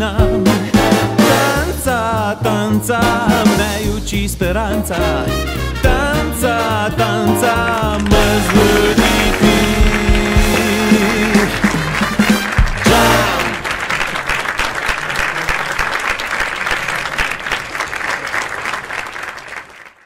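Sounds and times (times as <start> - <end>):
live band with trombones: 0.0 - 14.3
audience applause: 7.6 - 20.0.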